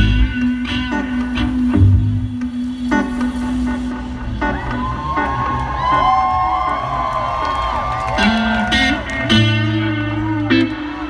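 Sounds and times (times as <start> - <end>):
sliding electric guitar notes: 0.0 - 4.5, 8.1 - 11.0.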